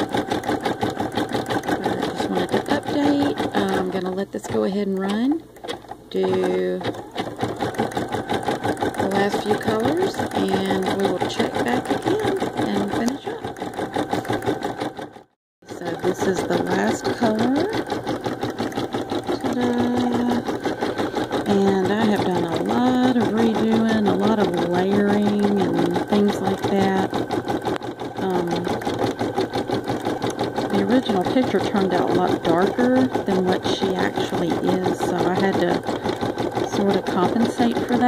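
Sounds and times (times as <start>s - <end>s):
embroidery machine stitching: 0.0s - 38.0s.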